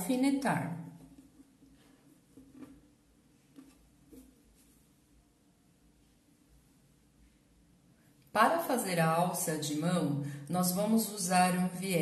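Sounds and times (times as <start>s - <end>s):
fabric rustling: 1.0s - 5.2s.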